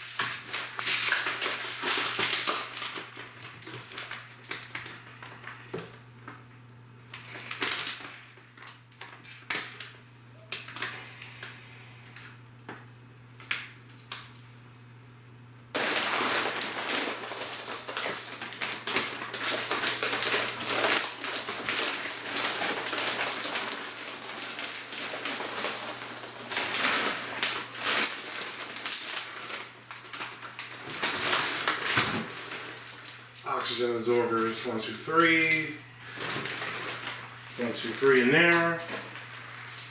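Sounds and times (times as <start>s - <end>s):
plastic bags crinkling with grains: 0.0s - 5.7s, 7.1s - 10.0s, 15.8s - 39.9s
low electrical hum: 0.0s - 39.9s.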